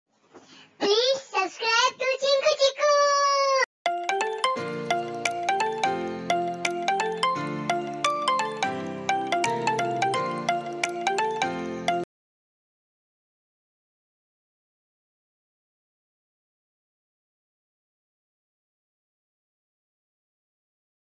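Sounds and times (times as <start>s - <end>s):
brisk tune of struck notes: 3.9s - 12.1s.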